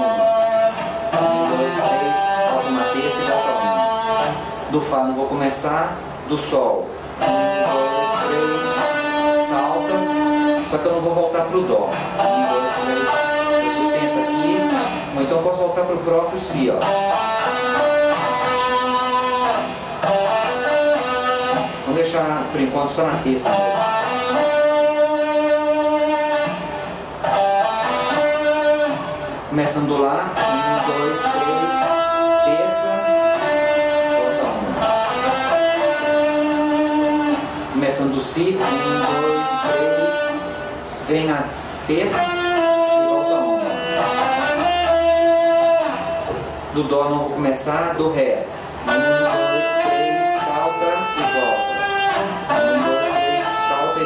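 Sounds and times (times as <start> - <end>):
electric guitar single notes: 0.0 - 5.2, 5.9 - 47.4, 48.4 - 54.0.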